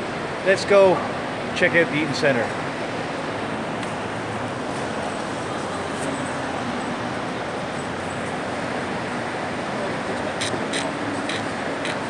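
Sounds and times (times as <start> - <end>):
shopping mall hubbub: 0.0 - 12.0.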